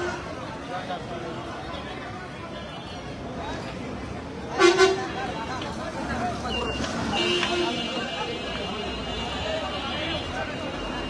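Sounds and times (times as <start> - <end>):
street noise: 0.0 - 11.0
voices: 0.0 - 11.0.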